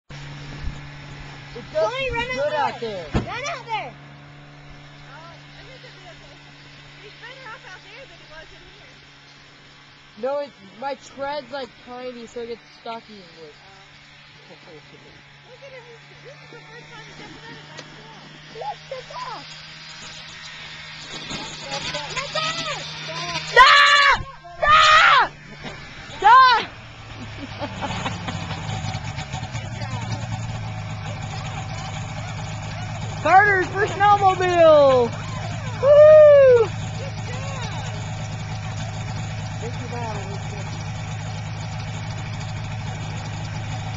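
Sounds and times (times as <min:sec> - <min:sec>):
snowmobile engine idling: 0:00.2 - 0:43.9.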